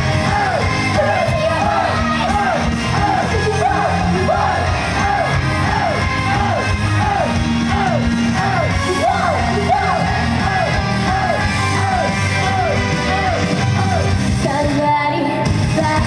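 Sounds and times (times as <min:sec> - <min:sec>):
audience shouting: 0:00.0 - 0:14.3
person singing: 0:03.0 - 0:16.0.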